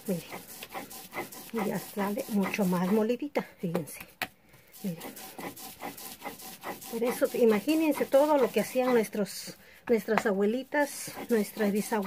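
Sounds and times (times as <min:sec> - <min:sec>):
stone grinding on stone: 0:00.0 - 0:03.2, 0:04.7 - 0:10.2, 0:10.8 - 0:12.0.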